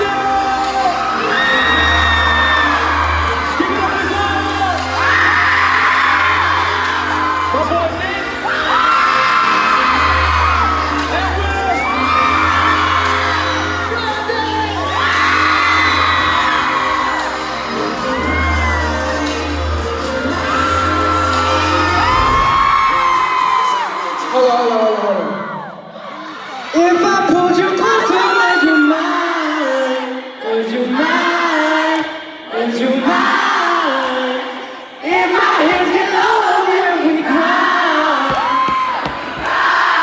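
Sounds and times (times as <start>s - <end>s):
live pop music with bass line: 0.0s - 25.3s
crowd screaming: 0.0s - 30.4s, 37.3s - 40.0s.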